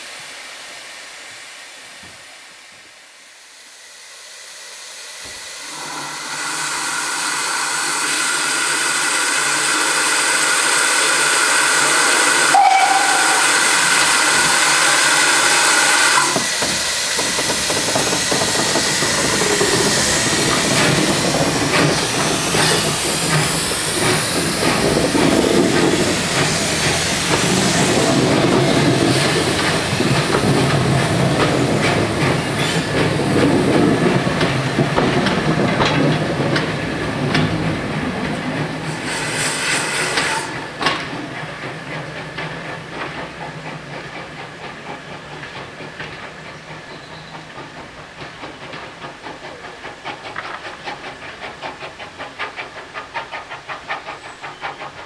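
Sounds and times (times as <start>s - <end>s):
steam locomotive hissing: 0.0s - 55.0s
locomotive chuffing beats: 5.9s - 55.0s.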